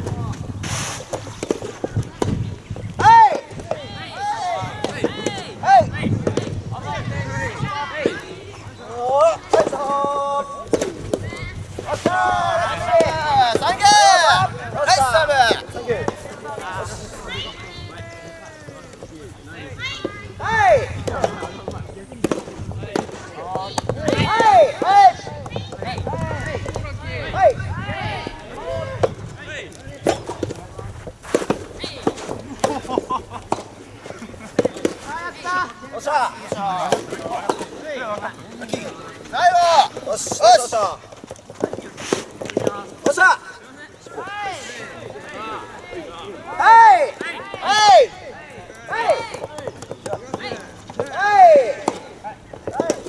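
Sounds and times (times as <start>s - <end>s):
faint voices: 0.0s - 53.0s
tennis balls struck and bouncing: 1.0s - 3.9s, 6.2s - 6.6s, 9.4s - 12.2s, 12.8s - 13.8s, 21.0s - 27.6s, 30.0s - 35.5s, 36.4s - 43.2s, 49.2s - 53.0s.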